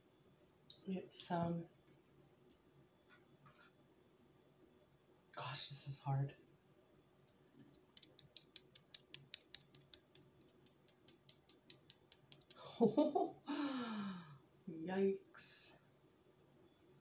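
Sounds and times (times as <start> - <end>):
tortilla wrap crackling: 7.6 - 12.6
person laughing: 12.6 - 13.9.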